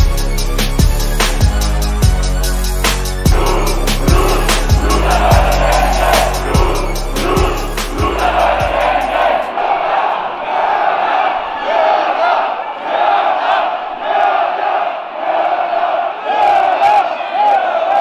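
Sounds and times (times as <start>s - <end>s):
music with heavy bass-drum beat: 0.0s - 9.4s
crowd shouting: 3.2s - 18.0s.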